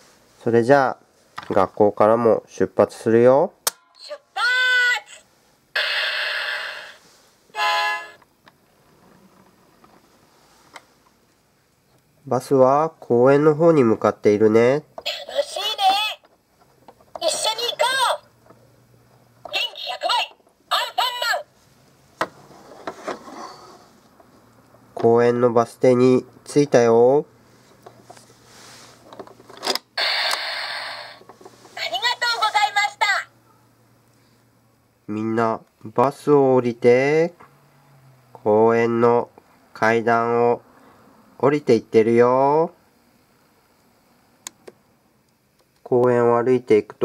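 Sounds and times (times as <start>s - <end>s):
toy horn toot: 5.8s - 8.2s.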